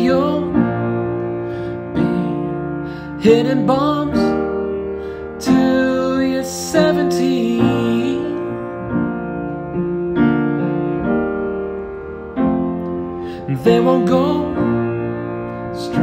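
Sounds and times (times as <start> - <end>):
man singing: 0.0 - 1.0, 1.9 - 4.7, 5.4 - 9.2, 13.4 - 16.0
upright piano chords: 0.0 - 16.0.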